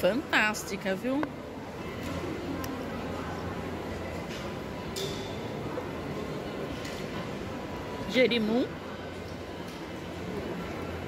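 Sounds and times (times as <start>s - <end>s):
food court murmur: 0.0s - 11.0s.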